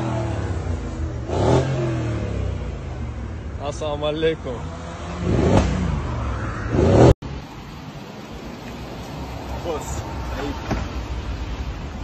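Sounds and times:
car engine revving: 0.0 - 7.2.

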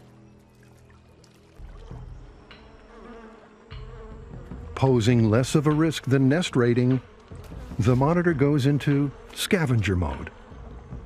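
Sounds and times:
flies buzzing: 0.0 - 11.0.

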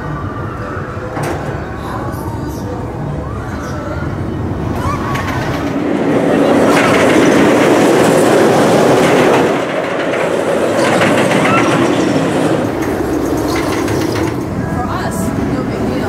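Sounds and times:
roller coaster train rumbling: 0.0 - 16.0.

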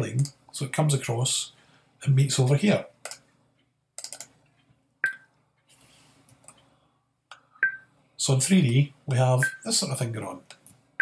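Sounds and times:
computer mouse clicks: 4.0 - 4.4.

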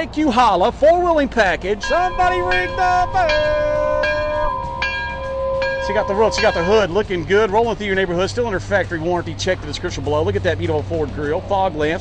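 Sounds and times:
bell ringing: 1.8 - 7.1.

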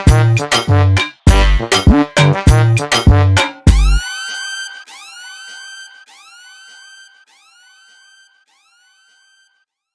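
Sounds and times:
siren whoop with echo: 3.8 - 9.6.

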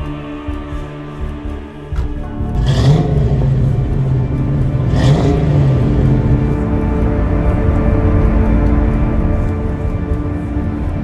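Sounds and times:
background music: 0.0 - 11.0
car engine under load: 1.5 - 11.0.

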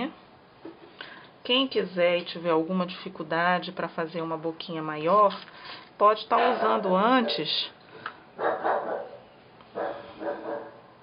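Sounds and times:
dog barking: 8.4 - 10.9.

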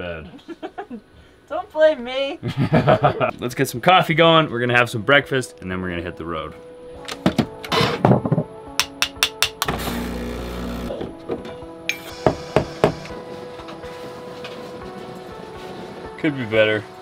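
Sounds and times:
background music: 2.7 - 17.0
portafilter knocks and clicks: 7.2 - 9.9
grinder motor running: 9.7 - 10.9
steam wand hissing: 11.9 - 13.1.

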